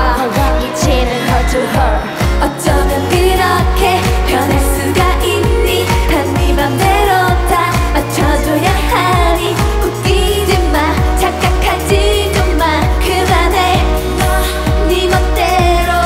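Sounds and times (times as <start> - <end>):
dance-pop backing track: 0.0 - 16.0
girl group singing live: 0.0 - 16.0.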